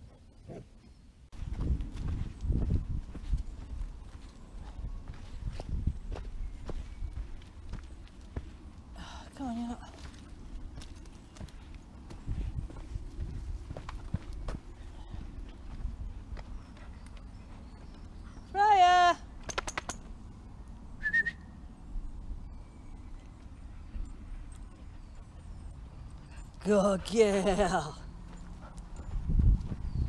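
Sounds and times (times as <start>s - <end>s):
footsteps on dirt path: 1.3s - 18.5s, 24.2s - 30.0s.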